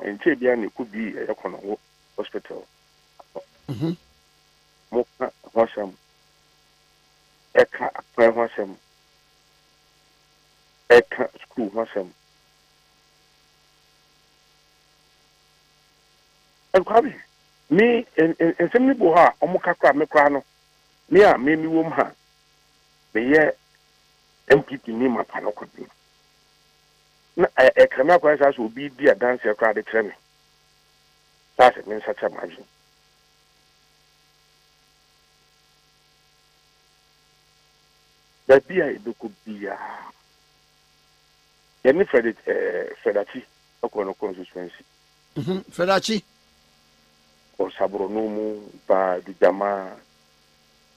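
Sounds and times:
speech over telephone line: 0.0 - 2.6, 4.9 - 6.0, 7.6 - 8.8, 10.9 - 12.1, 16.8 - 20.4, 24.5 - 25.9, 27.4 - 30.2, 31.6 - 32.6, 38.5 - 40.1, 41.9 - 44.8, 45.4 - 46.2, 47.6 - 50.0
electrical mains hum: 0.0 - 50.9
faint buzz: 0.0 - 50.9.

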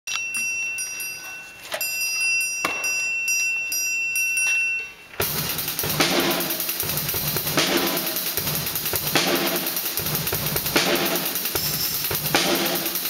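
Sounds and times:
ringing metal bell notes: 0.1 - 5.2, 11.5 - 12.3
drums and cymbals: 5.2 - 13.0.

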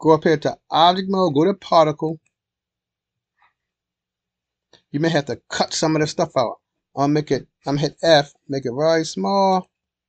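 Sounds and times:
person speaking: 0.0 - 2.2, 5.0 - 9.6.

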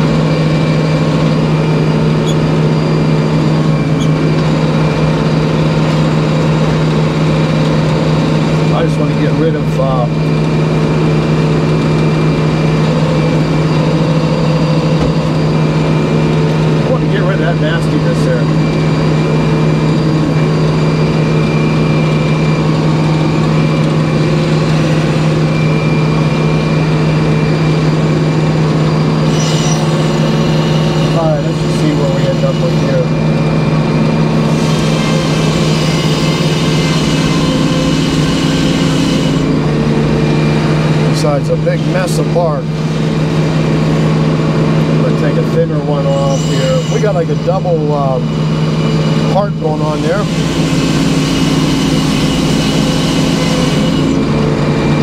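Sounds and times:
sawmill engine droning: 0.0 - 55.0.

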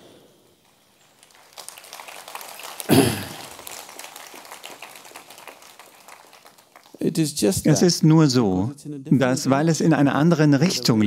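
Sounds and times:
audience clapping: 1.0 - 7.6.

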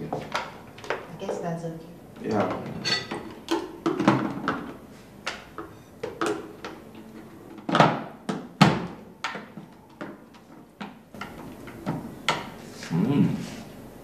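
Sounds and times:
dishes clattering on glass table: 2.4 - 4.8.

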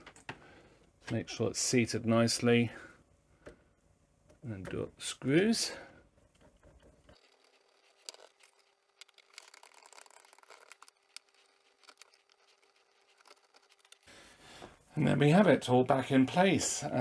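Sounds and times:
screwdriver ticking and scraping: 6.4 - 14.1.

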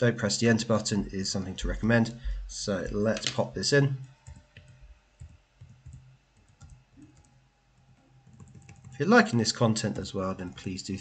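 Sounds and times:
computer keys clicking: 4.2 - 9.0.

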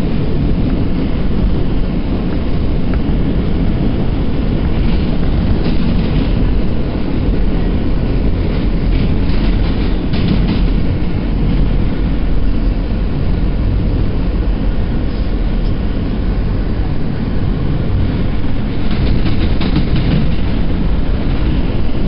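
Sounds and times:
subway train wheels rumbling: 0.0 - 22.0.

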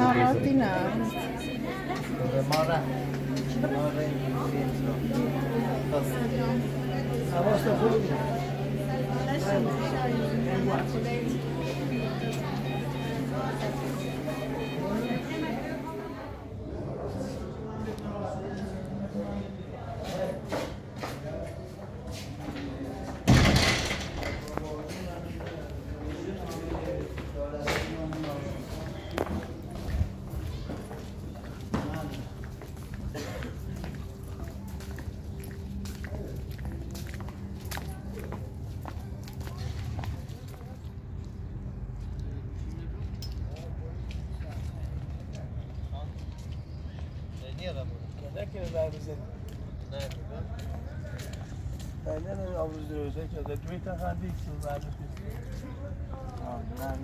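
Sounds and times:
indistinct voices: 0.0 - 47.4
footsteps: 24.2 - 41.4.

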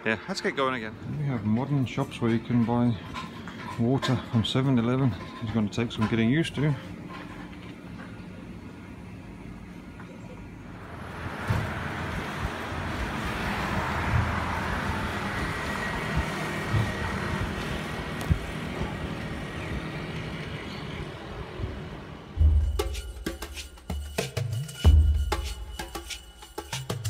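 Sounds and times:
road traffic hum: 0.0 - 27.0.

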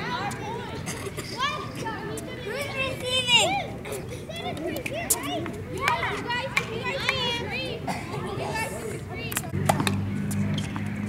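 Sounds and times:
children calling and chattering: 0.0 - 10.9
tennis balls being struck: 9.3 - 11.0.

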